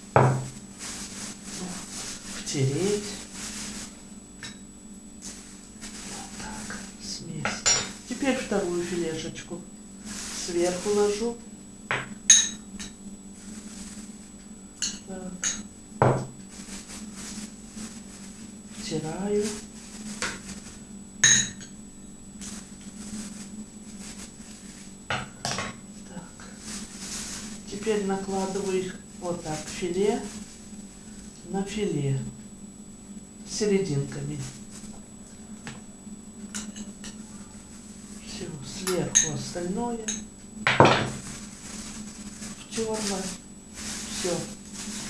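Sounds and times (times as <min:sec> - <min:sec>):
plastic bag rustling: 0:00.1 - 0:04.5, 0:05.1 - 0:07.2, 0:07.8 - 0:11.4, 0:13.3 - 0:14.4, 0:16.0 - 0:32.4, 0:33.5 - 0:35.7, 0:36.5 - 0:40.2, 0:40.8 - 0:45.0.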